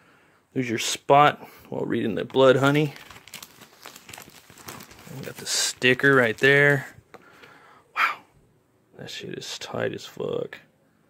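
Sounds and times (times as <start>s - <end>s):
plastic and paper crinkling: 2.1s - 7.3s.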